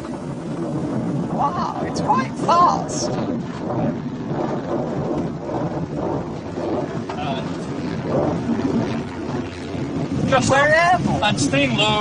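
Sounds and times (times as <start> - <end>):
rumble and rush of air in cockpit: 0.0 - 12.0.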